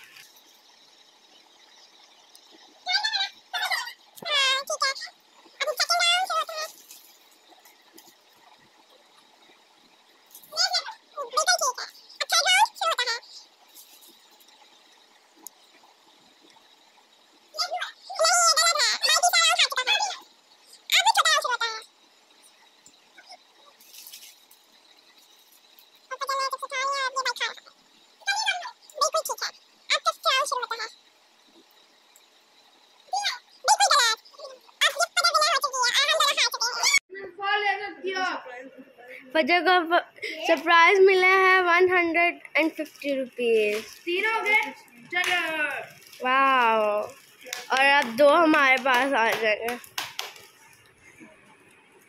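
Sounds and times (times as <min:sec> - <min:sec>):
child speaking: 0:02.8 - 0:06.8, 0:10.5 - 0:13.5, 0:17.6 - 0:21.9, 0:26.1 - 0:31.0, 0:33.1 - 0:49.8.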